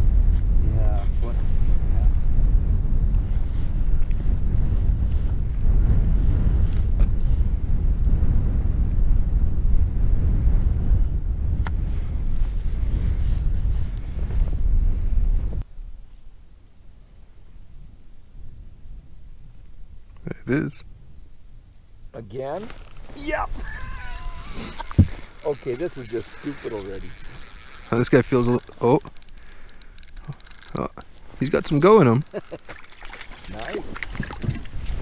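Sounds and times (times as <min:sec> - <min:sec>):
wind buffeting microphone: 0:00.0 - 0:15.7, 0:17.6 - 0:35.0
microphone handling clicks: 0:22.6 - 0:26.5.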